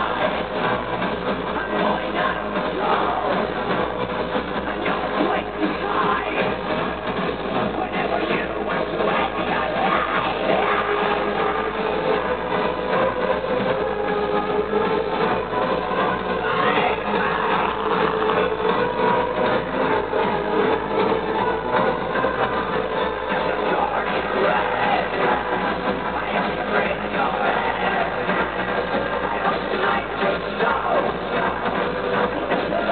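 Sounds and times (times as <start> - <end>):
harsh electronic industrial music: 0.0 - 32.9.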